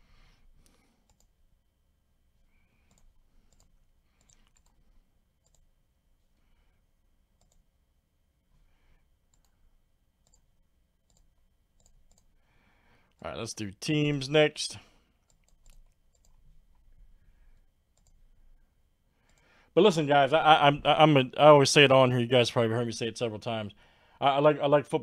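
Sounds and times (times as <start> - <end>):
mouse and keyboard clicks: 15.3 - 16.8.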